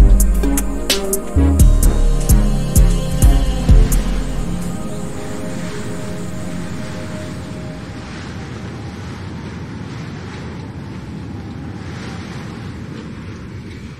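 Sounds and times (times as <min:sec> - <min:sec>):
held music notes: 0:00.0 - 0:08.2
steady rushing noise: 0:00.0 - 0:10.2.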